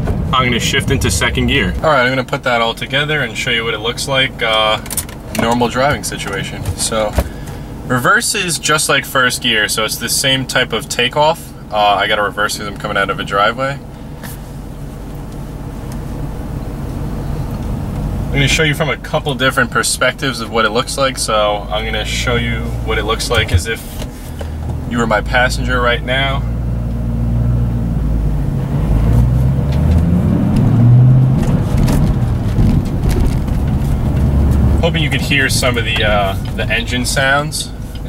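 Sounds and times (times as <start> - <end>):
car engine at low revs: 0.0 - 38.0.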